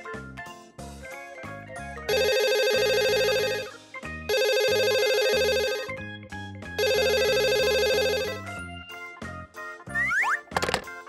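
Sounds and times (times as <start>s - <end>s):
light background music: 0.0s - 11.0s
phone ringtone trilling: 2.1s - 3.7s, 4.3s - 6.0s, 6.8s - 8.6s.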